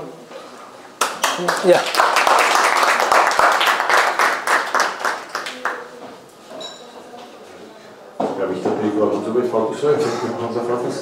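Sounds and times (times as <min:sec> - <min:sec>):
audience applauding: 0:01.0 - 0:05.9.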